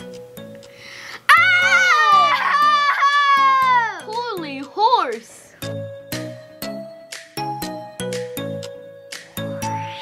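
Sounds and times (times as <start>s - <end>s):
background music with beat: 0.0s - 10.0s
children exclaiming whoa: 1.3s - 4.1s.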